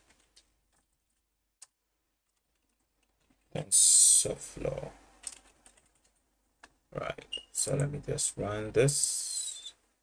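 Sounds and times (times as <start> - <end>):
keyboard typing: 0.0 - 3.5, 5.2 - 6.2.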